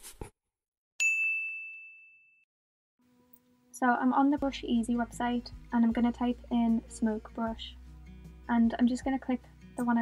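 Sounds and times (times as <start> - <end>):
bell-like ding: 1.0 - 2.4.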